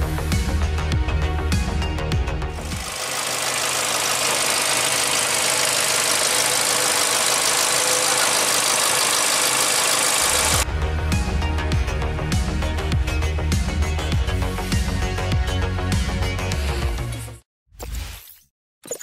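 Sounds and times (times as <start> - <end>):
car engine idling: 2.6 - 10.6.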